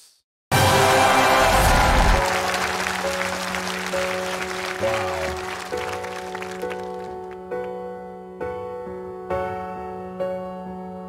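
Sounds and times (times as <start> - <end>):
audience applause: 0.8 - 7.4
slow piano notes: 2.2 - 11.0.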